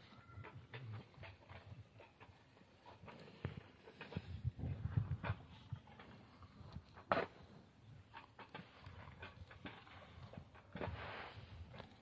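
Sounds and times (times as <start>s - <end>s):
buffalo crunching straw: 8.1s - 12.0s.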